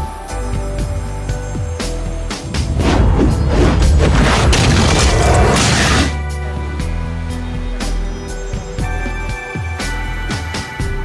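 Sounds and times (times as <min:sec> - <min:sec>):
music: 0:00.0 - 0:11.0
deep explosion blast: 0:02.3 - 0:06.2.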